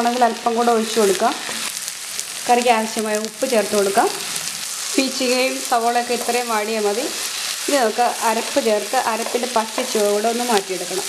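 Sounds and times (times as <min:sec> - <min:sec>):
vegetables sizzling in oil: 0:00.0 - 0:11.0
spatula scraping pan: 0:07.2 - 0:10.2.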